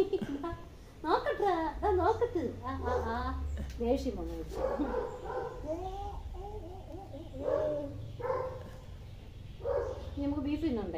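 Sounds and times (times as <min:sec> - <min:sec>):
woman's voice: 0:00.0 - 0:05.0, 0:10.2 - 0:10.9.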